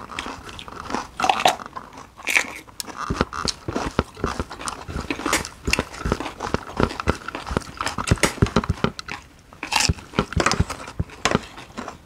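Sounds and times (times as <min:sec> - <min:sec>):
chewing and crunching food: 0:00.0 - 0:12.0.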